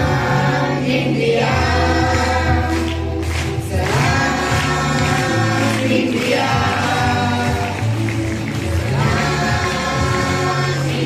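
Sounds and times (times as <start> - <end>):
children singing into microphones: 0.0 - 11.0.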